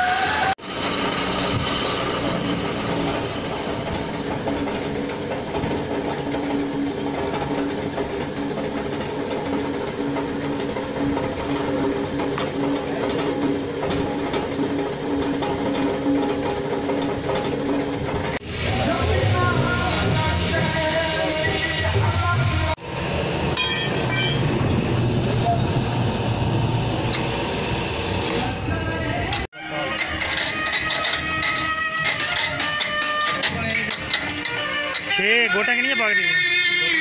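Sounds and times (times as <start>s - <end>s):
metal lathe running: 0.0s - 22.0s, 22.6s - 35.4s.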